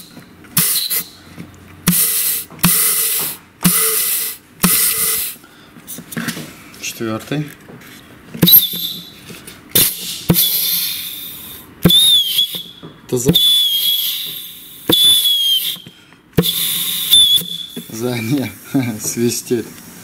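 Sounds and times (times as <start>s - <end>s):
compressed air blasts whistling: 0.0s - 5.4s, 8.4s - 9.2s, 9.8s - 18.6s.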